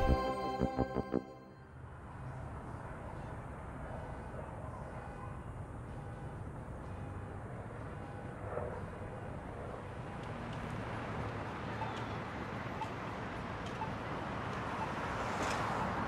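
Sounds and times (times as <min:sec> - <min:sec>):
faint street noise hum: 0:01.6 - 0:16.0
distant city traffic rumble: 0:01.8 - 0:16.0.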